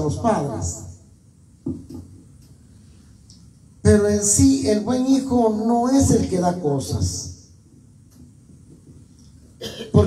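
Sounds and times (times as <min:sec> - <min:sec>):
man coughing into microphone: 0:09.6 - 0:10.0.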